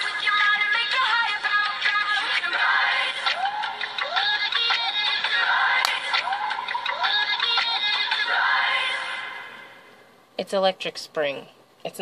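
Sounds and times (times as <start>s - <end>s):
pop music with singing: 0.0s - 10.0s.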